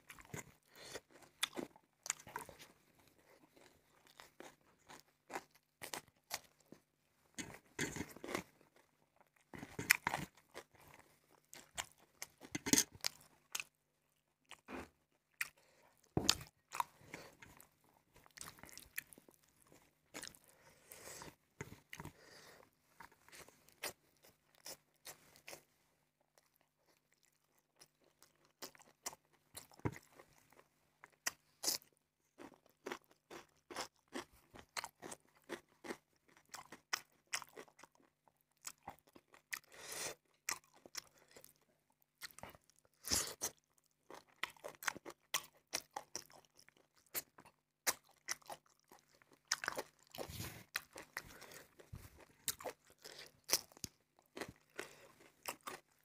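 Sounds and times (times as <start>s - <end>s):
man chewing food: 0.0s - 25.7s, 26.3s - 56.0s.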